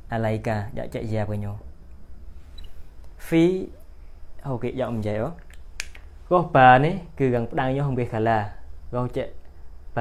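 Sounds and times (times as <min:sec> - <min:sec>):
man speaking: 0:00.0 - 0:01.7, 0:03.2 - 0:05.4, 0:06.3 - 0:10.0
sharp click: 0:05.4 - 0:06.1.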